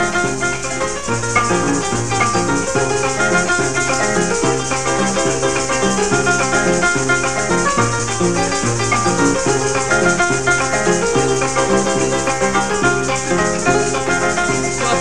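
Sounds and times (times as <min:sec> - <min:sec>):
harp melody and bass runs: 0:00.0 - 0:15.0
maracas shaking: 0:00.0 - 0:15.0.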